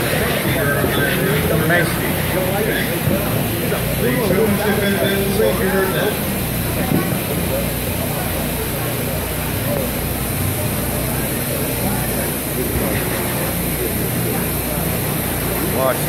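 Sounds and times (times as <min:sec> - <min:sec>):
faint distant voices: 0:00.0 - 0:16.0.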